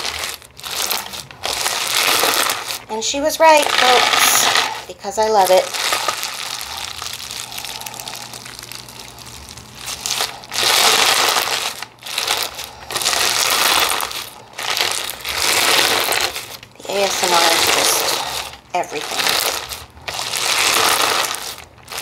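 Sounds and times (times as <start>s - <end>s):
crunchy slime being squeezed: 0.0s - 22.0s.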